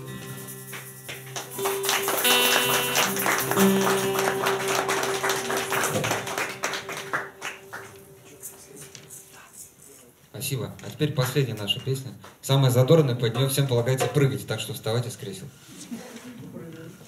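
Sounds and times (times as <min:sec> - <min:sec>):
strummed acoustic guitars: 0:00.0 - 0:09.3.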